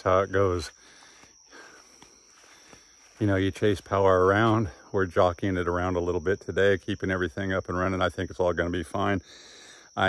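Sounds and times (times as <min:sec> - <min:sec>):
high-pitched insect trill: 0:00.0 - 0:10.0.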